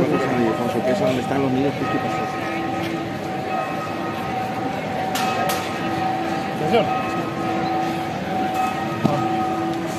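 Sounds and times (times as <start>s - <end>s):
street crowd murmuring: 0.0s - 9.9s.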